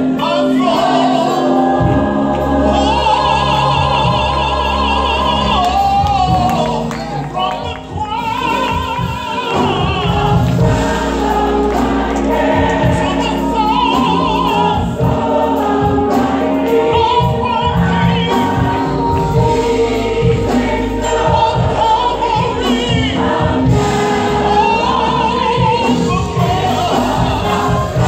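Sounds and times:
gospel choir singing: 0:00.0 - 0:28.0
instrumental accompaniment: 0:00.0 - 0:28.0
lead singer: 0:00.0 - 0:28.0.

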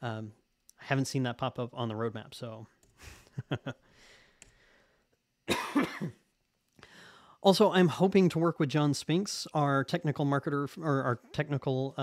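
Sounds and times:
faint breath: 0:03.0 - 0:05.2, 0:06.8 - 0:07.4
man coughing: 0:05.5 - 0:06.2.

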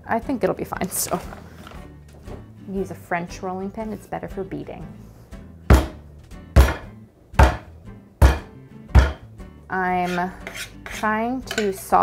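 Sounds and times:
rolling pin thudding on fat block: 0:06.6 - 0:09.2.

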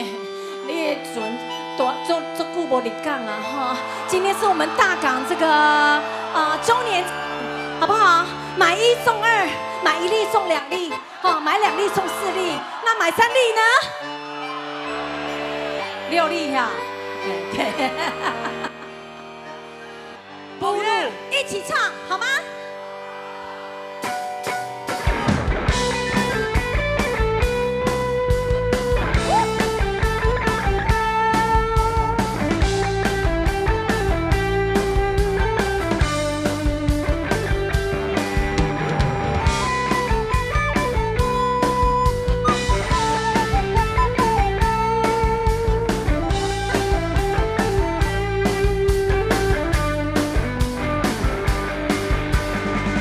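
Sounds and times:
rock band playing: 0:00.0 - 0:53.0.

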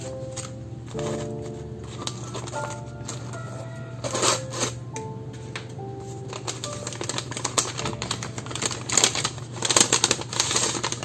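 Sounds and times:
paper crinkling and rustling: 0:00.0 - 0:04.8, 0:05.4 - 0:11.0.

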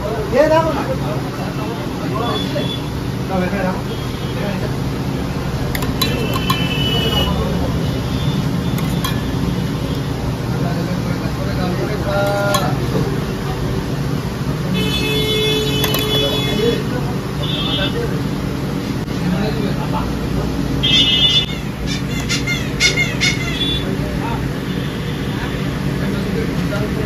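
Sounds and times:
traffic: 0:00.0 - 0:27.0
metal spoon clinking on cups: 0:05.8 - 0:07.4, 0:08.7 - 0:10.1, 0:12.2 - 0:13.0, 0:15.4 - 0:16.8
high-pitched vehicle horn: 0:05.8 - 0:10.0, 0:14.8 - 0:16.8, 0:20.8 - 0:23.9.

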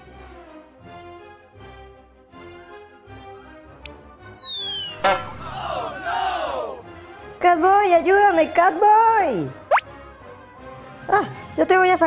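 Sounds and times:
soft background music: 0:00.0 - 0:12.0
cartoon falling whistle: 0:03.9 - 0:05.6.

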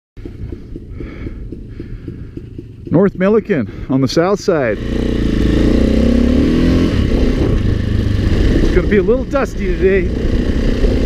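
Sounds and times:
dirt bike engine idling: 0:00.2 - 0:11.0.

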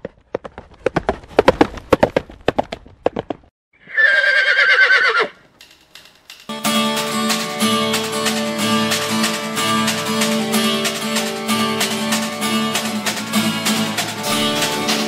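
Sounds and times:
horse hooves clattering: 0:00.0 - 0:03.5
horse whinny: 0:03.8 - 0:05.4
music: 0:06.0 - 0:15.0.

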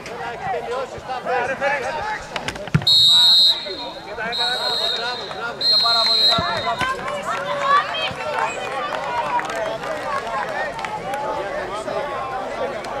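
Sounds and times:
men calling and talking: 0:00.0 - 0:13.0
referee's whistle blast: 0:02.8 - 0:07.0.

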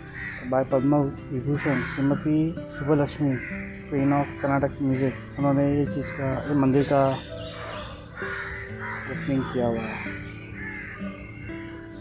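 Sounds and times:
background music steady note: 0:00.0 - 0:12.0
crows cawing: 0:00.0 - 0:12.0.

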